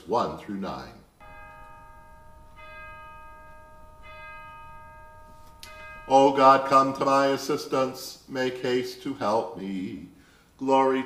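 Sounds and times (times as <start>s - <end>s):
bell ringing: 1.2s - 7.5s.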